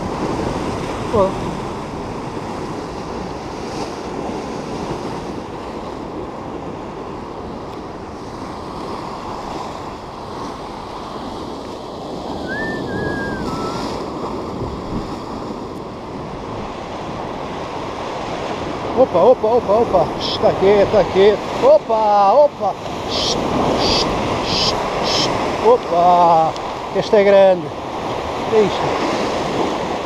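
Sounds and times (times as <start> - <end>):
wind buffeting microphone: 0.0 - 19.0, 22.5 - 25.9
surf breaking over rocks: 12.0 - 15.4, 18.2 - 30.0
short thin rising falling call: 12.4 - 14.0, 23.1 - 25.4.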